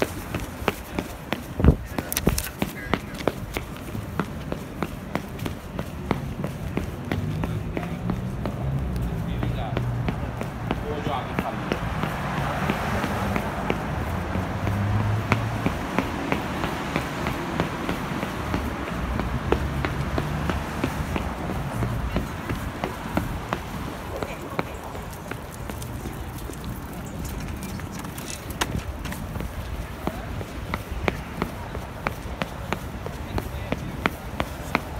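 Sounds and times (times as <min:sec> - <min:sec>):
city street noise: 0:00.0 - 0:34.9
footsteps on concrete: 0:00.0 - 0:34.9.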